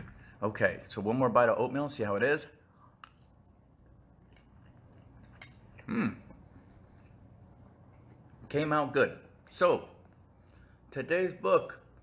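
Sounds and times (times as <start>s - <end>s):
man humming hmm: 5.9s - 6.3s.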